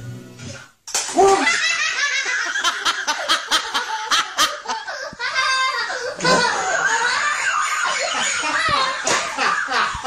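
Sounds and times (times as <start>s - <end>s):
young child laughing: 1.2s - 10.0s.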